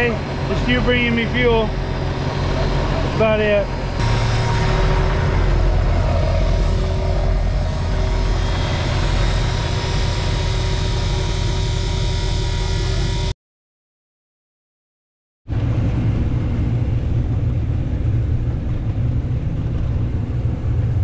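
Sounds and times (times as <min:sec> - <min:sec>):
tractor engine running: 0:00.0 - 0:13.3.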